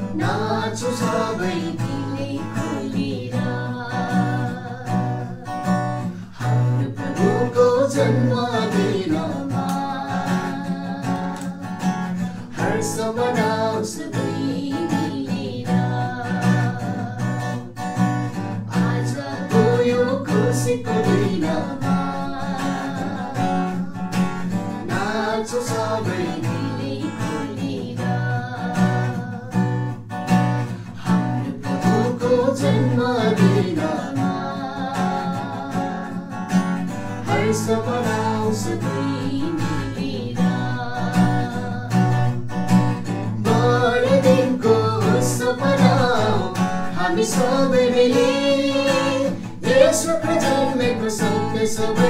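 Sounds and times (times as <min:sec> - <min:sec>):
man and woman singing carol: 0:00.0 - 0:30.0, 0:30.6 - 0:52.0
acoustic guitar strumming: 0:00.0 - 0:52.0.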